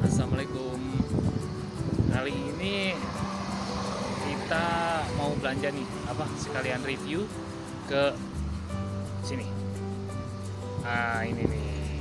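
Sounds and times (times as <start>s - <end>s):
background music: 0.0s - 12.0s
road traffic rumble: 0.0s - 12.0s.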